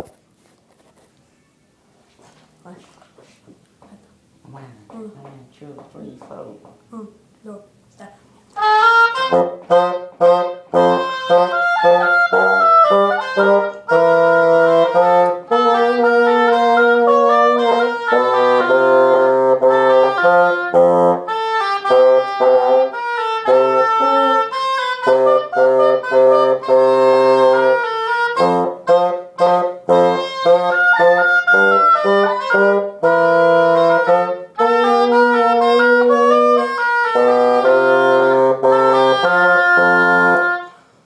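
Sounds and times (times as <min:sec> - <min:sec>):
bassoon: 0:08.6 - 0:40.8
oboe: 0:08.6 - 0:40.8.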